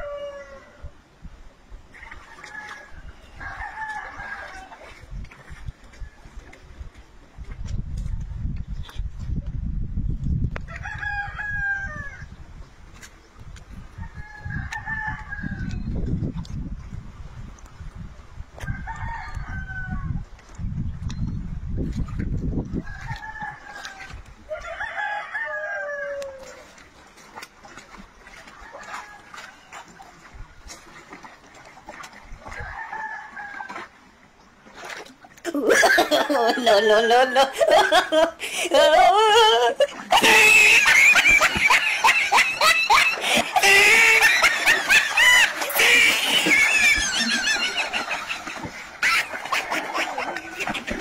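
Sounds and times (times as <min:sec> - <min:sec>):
rooster crowing: 0:00.0 - 0:00.8, 0:02.4 - 0:04.7, 0:10.7 - 0:12.3, 0:14.0 - 0:15.7, 0:18.6 - 0:20.1, 0:22.8 - 0:26.6, 0:32.6 - 0:33.8.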